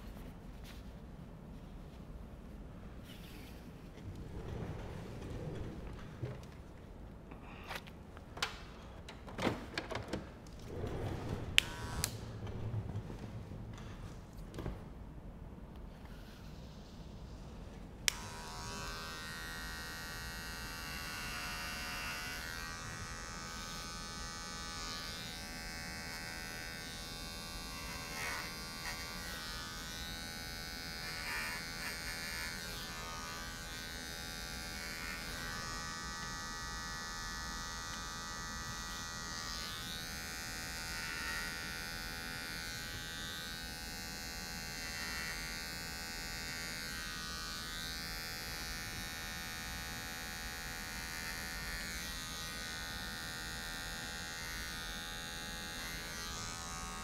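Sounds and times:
electric hair clippers buzzing: 0:11.6 - 0:12.4, 0:18.0 - 0:57.0.

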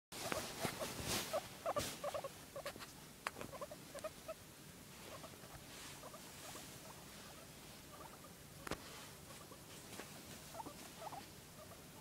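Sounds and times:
guinea pig calls: 0:00.2 - 0:04.4, 0:05.0 - 0:09.7, 0:10.4 - 0:12.0.

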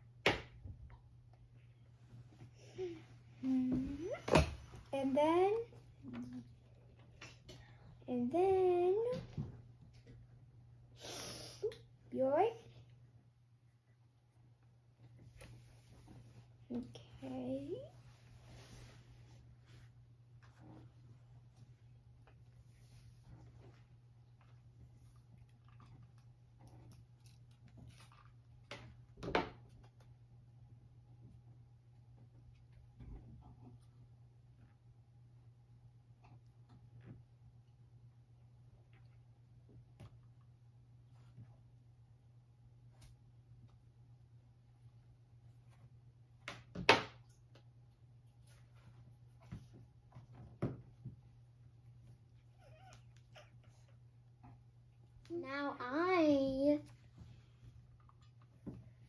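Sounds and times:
low steady hum: 0:00.0 - 0:59.0.

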